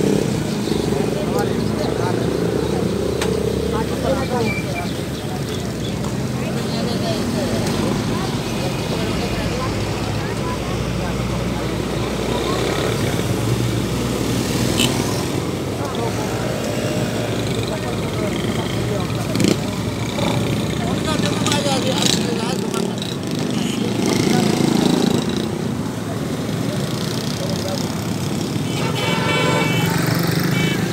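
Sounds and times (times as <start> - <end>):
motorcycle engines passing: 0.0 - 30.9
people chatting: 0.0 - 30.9
vehicle horn toots: 28.7 - 30.9.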